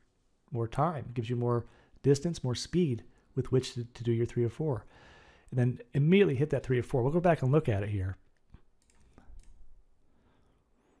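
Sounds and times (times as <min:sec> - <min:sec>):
soft mouse clicks: 0:08.3 - 0:09.7.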